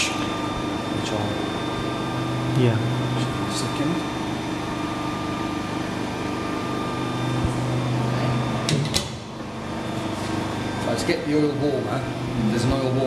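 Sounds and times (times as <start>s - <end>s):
hydraulic pump motor humming: 0.0s - 13.0s.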